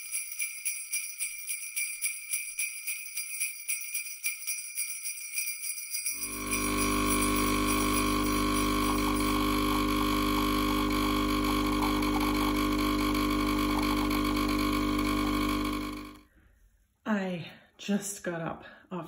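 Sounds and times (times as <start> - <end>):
espresso machine pump buzzing: 6.2 - 16.2.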